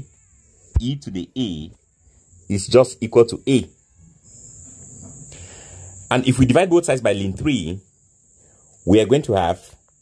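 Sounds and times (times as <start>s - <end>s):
high-pitched whine: 0.0s - 9.8s
faint low background noise: 0.0s - 10.0s
soft hiss: 0.0s - 10.0s.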